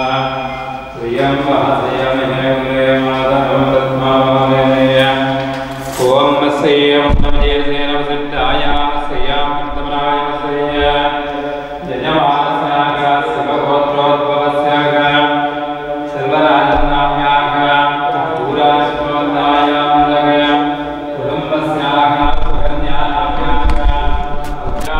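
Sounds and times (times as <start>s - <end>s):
mantra chanting: 0.0s - 24.9s.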